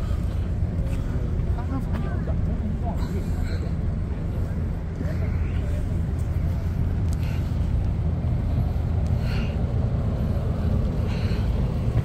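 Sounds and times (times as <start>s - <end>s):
city ambience rumble: 0.0s - 12.0s
faint voices of passers-by: 0.0s - 12.0s.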